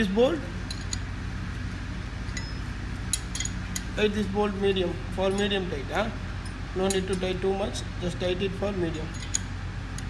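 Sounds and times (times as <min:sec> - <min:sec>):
steady low hum: 0:00.0 - 0:10.0
metal clink with ring: 0:00.6 - 0:01.1, 0:02.2 - 0:03.9, 0:09.0 - 0:09.5.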